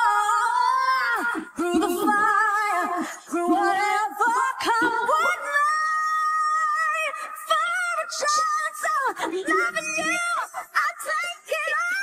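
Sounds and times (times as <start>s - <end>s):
woman singing a ballad: 0.0s - 12.0s.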